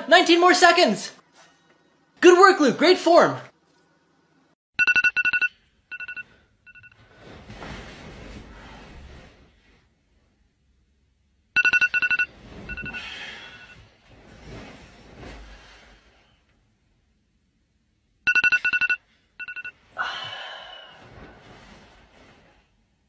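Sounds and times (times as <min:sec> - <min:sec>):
phone alarm beeping: 0:04.8 - 0:06.9, 0:11.6 - 0:13.8, 0:18.3 - 0:19.7.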